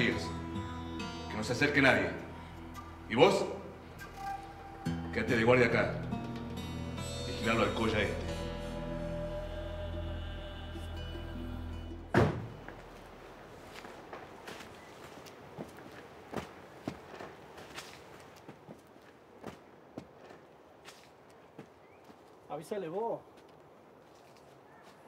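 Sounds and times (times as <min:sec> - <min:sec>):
man speaking: 0:00.0 - 0:00.4, 0:01.3 - 0:02.3, 0:03.1 - 0:03.7, 0:05.0 - 0:06.1, 0:07.3 - 0:08.6
loud thud: 0:12.1 - 0:12.6
footsteps on dry dirt: 0:12.5 - 0:22.5, 0:23.2 - 0:25.0.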